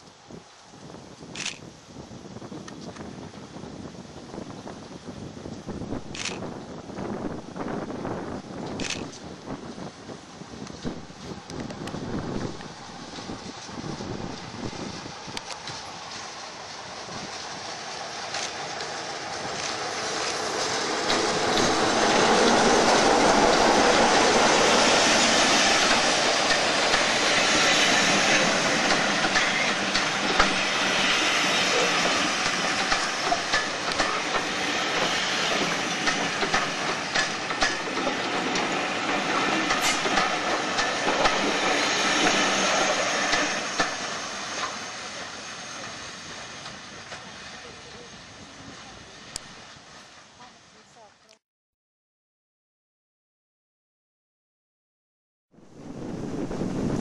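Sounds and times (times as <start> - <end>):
diesel locomotive passing: 3.4 - 51.3
train wheels clicking over rail joints: 15.2 - 47.4.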